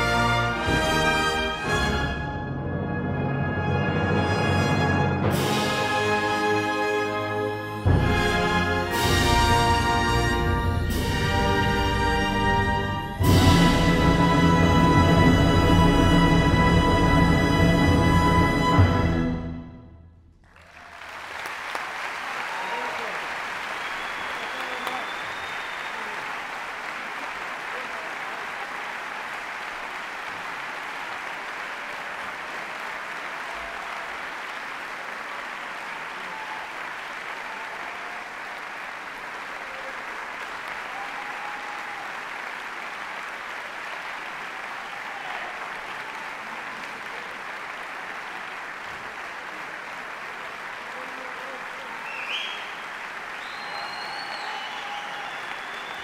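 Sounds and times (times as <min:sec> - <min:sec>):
orchestral chord: 0:00.0 - 0:20.1
audience applauding: 0:20.4 - 0:56.0.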